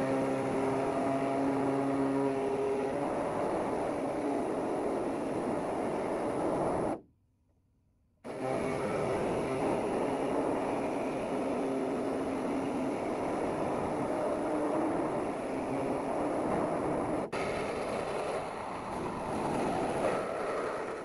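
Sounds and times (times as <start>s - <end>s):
power tool cutting sheet metal: 0.0s - 5.7s, 8.3s - 16.7s.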